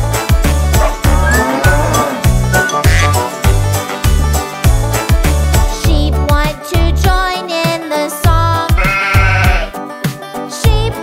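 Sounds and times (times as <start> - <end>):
sheep bleating: 0.8 - 3.2, 8.8 - 9.8
bouncy children's song: 5.2 - 11.0.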